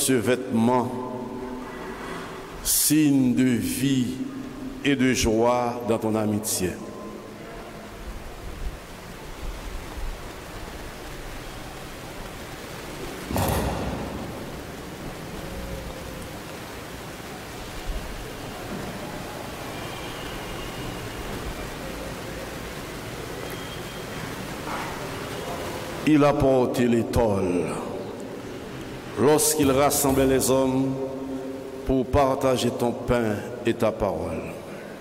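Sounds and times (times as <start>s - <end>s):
microphone background hiss: 0.0s - 35.0s
loud rustle or thump: 13.3s - 14.6s.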